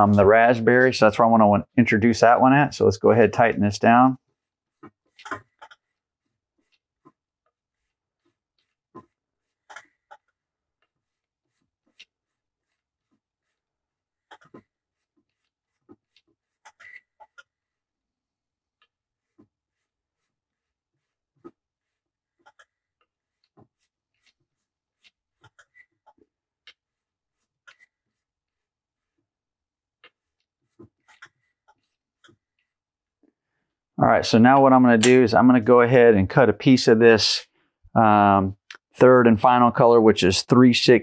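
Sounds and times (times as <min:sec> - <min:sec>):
burnishing tool scraping thread: 0:03.8 - 0:17.9.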